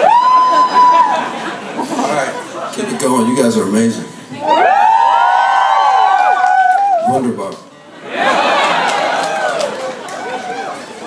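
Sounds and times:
concert audience cheering and screaming: 0.0s - 2.0s, 4.4s - 7.2s, 8.0s - 11.0s.

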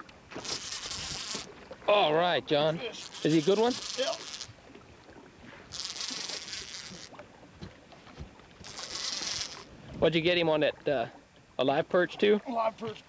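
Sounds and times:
fishing reel whirring: 0.3s - 1.6s, 2.7s - 4.6s, 5.6s - 7.2s, 8.6s - 9.7s.

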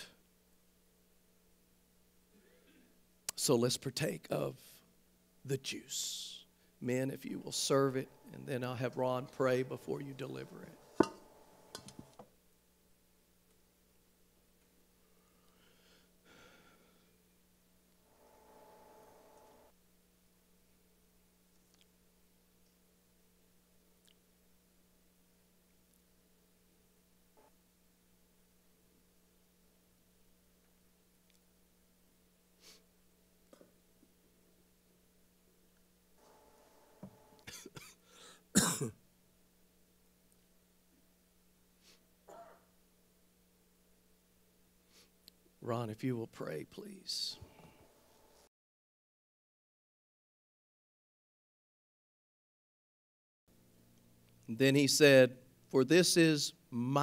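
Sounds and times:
faint steady hum: 0.0s - 48.5s, 53.5s - 57.0s
person clearing throat: 37.5s - 38.0s, 38.6s - 39.0s, 42.3s - 42.6s
person coughing: 37.5s - 39.0s.

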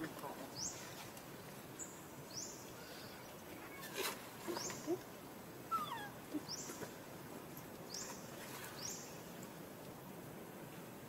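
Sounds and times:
high rising animal chirp: 5.7s - 6.7s.

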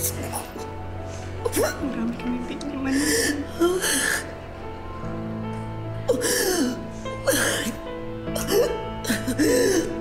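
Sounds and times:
soft background music: 0.0s - 10.0s
woman sobbing: 2.8s - 4.3s, 6.1s - 10.0s.

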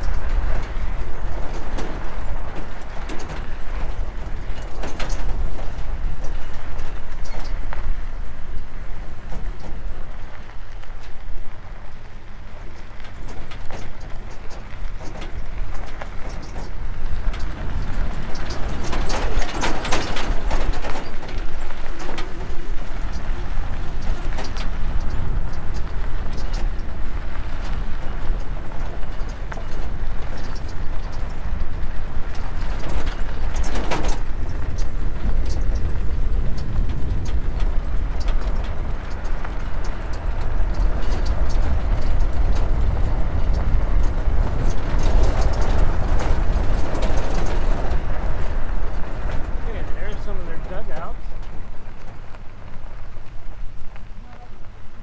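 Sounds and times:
gravel clicks: 0.0s - 55.0s
tyres rumbling on gravel road: 0.0s - 55.0s.

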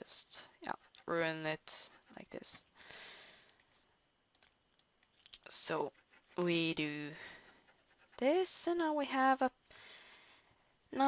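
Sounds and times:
computer mouse and key clicks: 3.4s - 5.6s.

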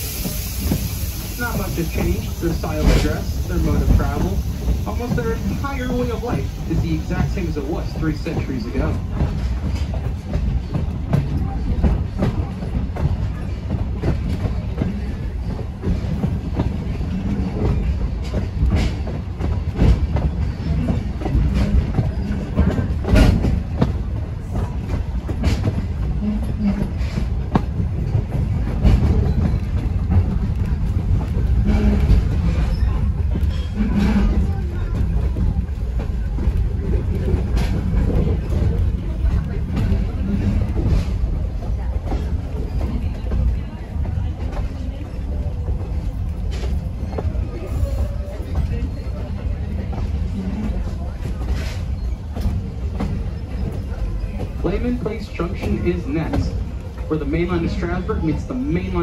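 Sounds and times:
train low rumble: 0.0s - 59.0s
wheels clicking on rails: 0.0s - 59.0s.

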